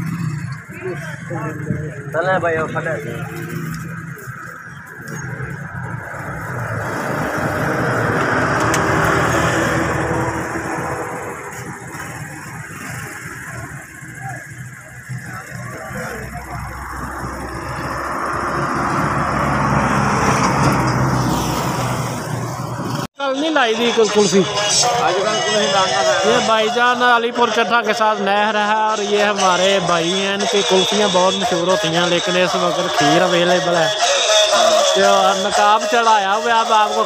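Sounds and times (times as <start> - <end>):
vehicles passing on road: 0.0 - 37.0.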